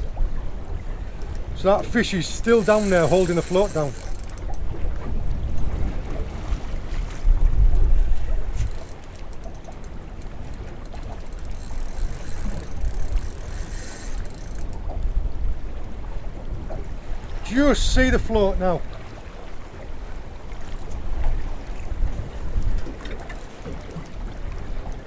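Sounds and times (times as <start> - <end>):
choppy water around boat: 0.0 - 25.0
wind buffeting microphone: 0.0 - 25.0
faint clicks: 0.9 - 4.6, 7.7 - 15.1, 22.6 - 25.0.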